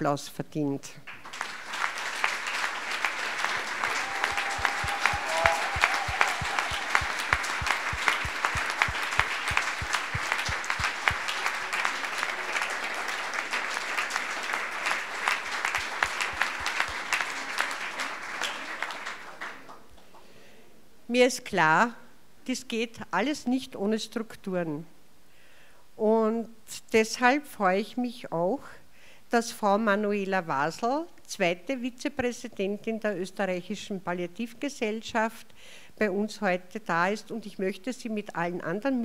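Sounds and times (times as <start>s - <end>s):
audience applauding: 1.1s - 20.2s.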